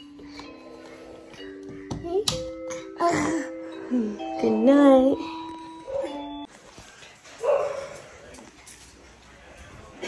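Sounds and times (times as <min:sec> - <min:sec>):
soft music: 0:00.0 - 0:10.0.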